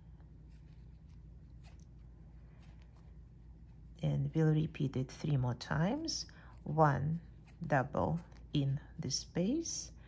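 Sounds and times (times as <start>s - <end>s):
low steady hum: 0.0s - 10.0s
crochet hook scratching thread: 0.4s - 4.8s, 5.8s - 8.8s.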